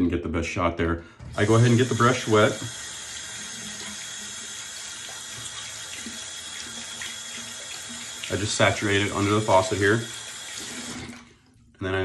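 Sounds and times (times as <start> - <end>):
water running from faucet: 1.3 - 11.6.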